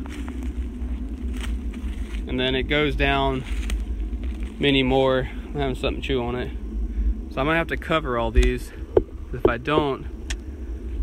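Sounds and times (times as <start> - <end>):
footsteps on dry leaves: 0.0 - 5.0
low microphone rumble: 0.0 - 11.0.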